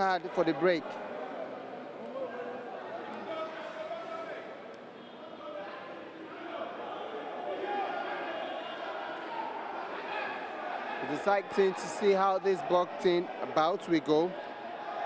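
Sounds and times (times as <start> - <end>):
crowd shouting and talking: 0.0 - 15.0.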